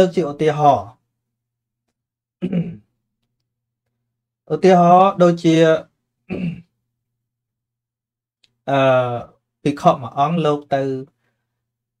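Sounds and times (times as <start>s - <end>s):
man clearing throat: 2.4s - 2.9s, 6.3s - 6.7s.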